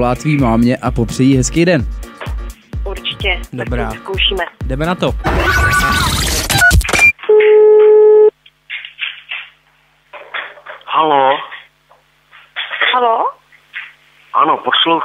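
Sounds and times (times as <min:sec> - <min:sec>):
noisy sound effect: 0:05.2 - 0:07.1
steady telephone tone: 0:07.0 - 0:08.3
muffled voice over phone: 0:10.6 - 0:11.7, 0:14.3 - 0:15.0.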